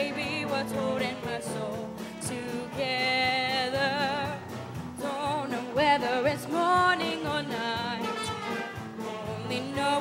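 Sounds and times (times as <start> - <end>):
jazz band accompaniment: 0.0 - 10.0.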